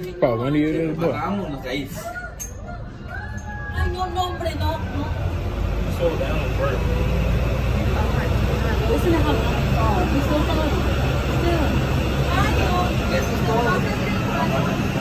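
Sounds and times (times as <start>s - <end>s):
indistinct chatter: 0.0s - 15.0s
steady low rumble: 3.8s - 15.0s.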